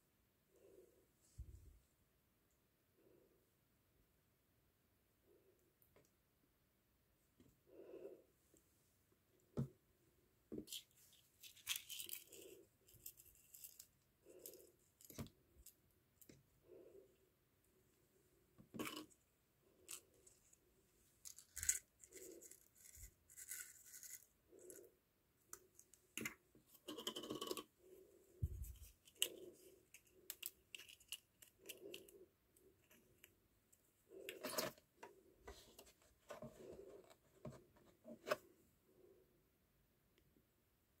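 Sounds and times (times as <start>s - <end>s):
hands handling plastic cup: 10.5s - 15.4s, 25.5s - 27.7s.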